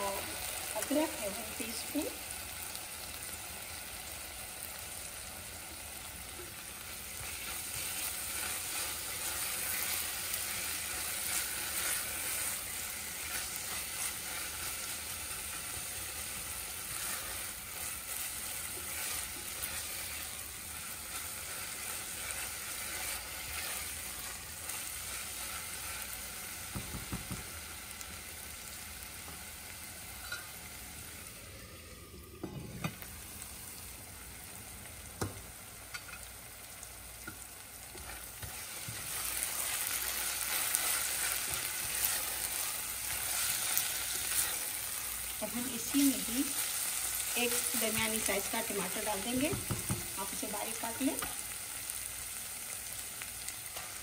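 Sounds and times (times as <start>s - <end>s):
onions sizzling in oil: 0.0s - 54.0s
spatula stirring in pot: 7.2s - 27.4s, 37.3s - 44.8s.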